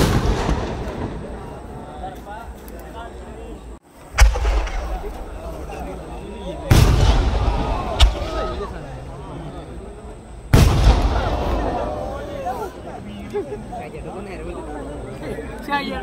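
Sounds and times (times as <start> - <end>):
fireworks exploding: 0.0 - 2.1, 4.0 - 9.1, 10.5 - 12.2.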